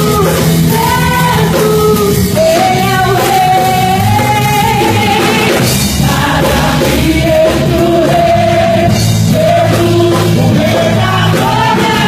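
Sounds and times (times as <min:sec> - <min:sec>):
bass guitar: 0:00.0 - 0:12.0
church band playing worship song: 0:00.0 - 0:12.0
voices singing together: 0:00.0 - 0:12.0.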